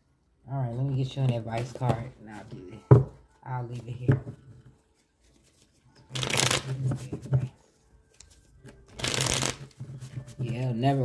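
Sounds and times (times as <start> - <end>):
cards being shuffled: 5.0 - 7.5, 8.1 - 10.7.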